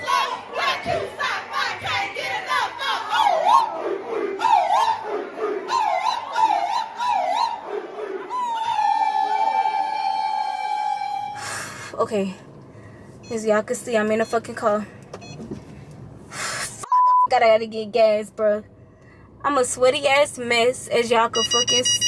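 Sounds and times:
crowd shouting and chanting: 0.0s - 11.3s
voice holding long high note: 8.3s - 11.5s.

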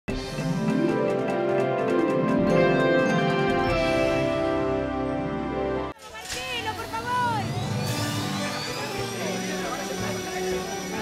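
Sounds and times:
studio audience noise: 5.8s - 11.0s.

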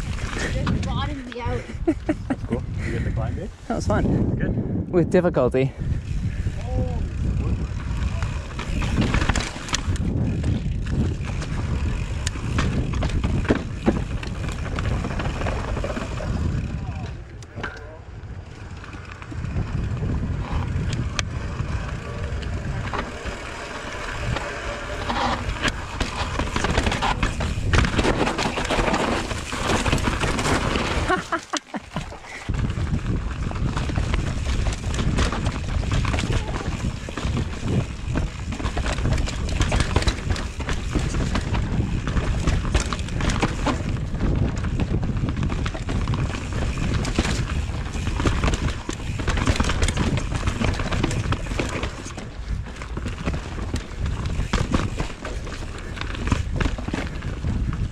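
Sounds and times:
bike tyres rumbling: 0.0s - 4.9s, 5.5s - 57.9s
wind on microphone: 0.0s - 57.9s
bike knocks and rattles: 6.3s - 18.0s, 18.6s - 57.9s.

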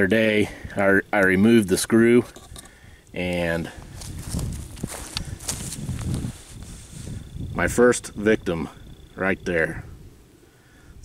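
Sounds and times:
footsteps on dry grass and leaves: 3.5s - 7.4s.

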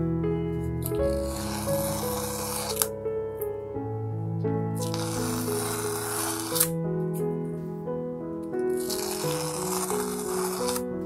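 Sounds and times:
background music sustained notes: 0.0s - 11.0s
tape peeling rip: 0.8s - 3.0s, 4.8s - 6.8s, 8.7s - 10.9s
tape snapping: 6.3s - 6.8s.

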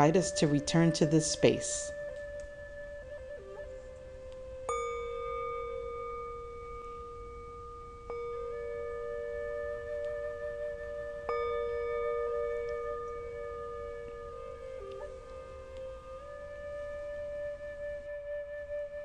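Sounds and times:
meditation bell ringing: 4.6s - 16.6s.

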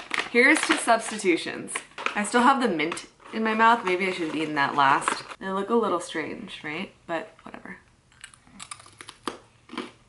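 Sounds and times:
crunchy chip being chewed: 8.2s - 10.0s.

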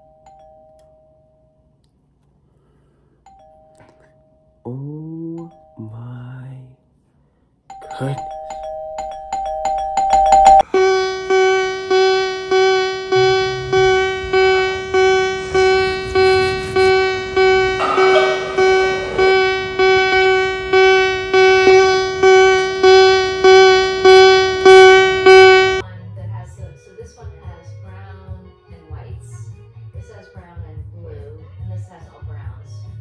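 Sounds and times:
two-note doorbell chime: 7.7s - 15.8s, 16.8s - 25.8s
pulsing electronic tone: 10.1s - 25.8s.

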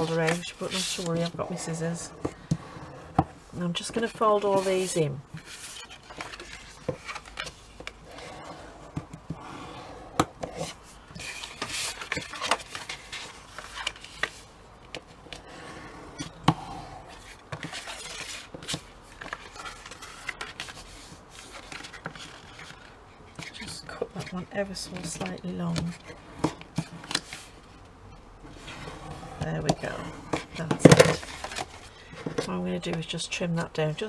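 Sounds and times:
paper rustling and scraping: 0.0s - 3.0s, 3.8s - 7.9s, 10.5s - 14.5s, 17.1s - 27.6s, 28.5s - 32.6s.

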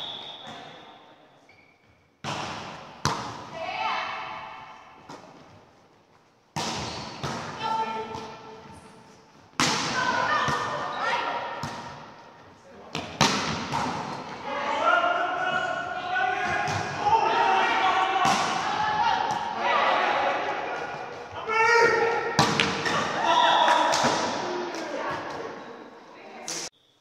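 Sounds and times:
gym echo: 0.0s - 1.5s
volleyball being hit: 2.2s - 3.6s, 6.5s - 8.4s, 9.6s - 10.8s, 11.5s - 12.1s, 12.9s - 14.4s, 18.2s - 19.6s, 22.3s - 23.2s, 23.8s - 24.6s.

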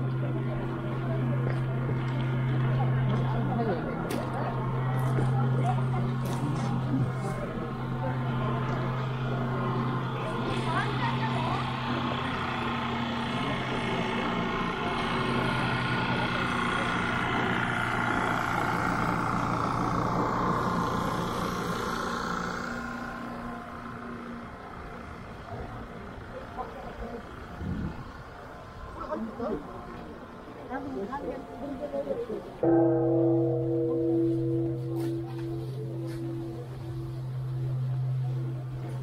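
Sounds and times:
engine idling: 0.0s - 39.0s
people's voices: 0.0s - 39.0s.

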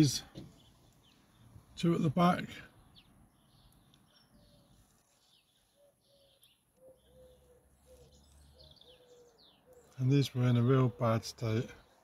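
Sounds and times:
high bird chirps: 2.7s - 10.1s.

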